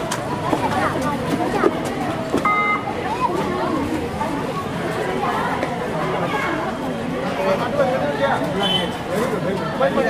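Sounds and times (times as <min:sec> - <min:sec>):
overlapping voices talking: 0:00.0 - 0:10.0
brief steady tone: 0:02.4 - 0:02.9.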